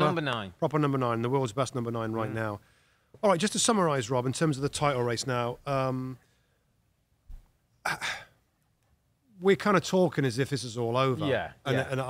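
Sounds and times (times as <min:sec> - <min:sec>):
man sighing: 0:07.9 - 0:08.4.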